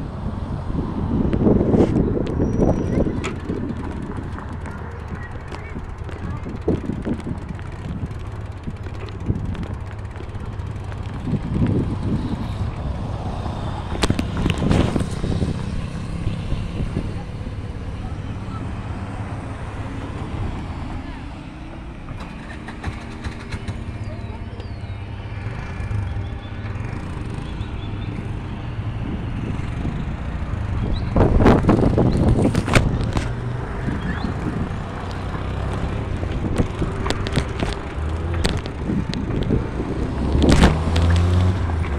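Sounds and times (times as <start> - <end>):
wind rumble on microphone: 0.0 - 21.4, 22.0 - 41.9
vehicle engine hum: 0.0 - 41.9
bicycle clattering over bumps: 2.9 - 12.9, 22.0 - 24.1, 34.4 - 41.9.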